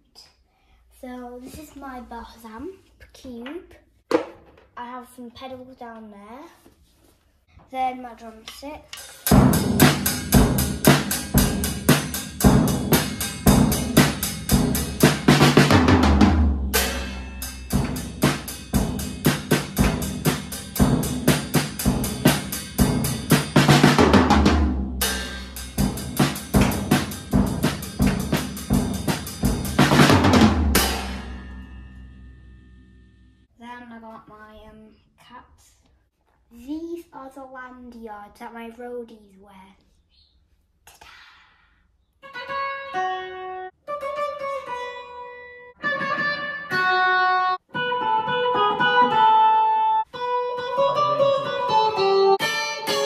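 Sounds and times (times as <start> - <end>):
drum kit rock beat: 8.8 - 33.2, 45.8 - 53.0
cymbal crash ringing: 16.6 - 23.9, 24.9 - 33.4.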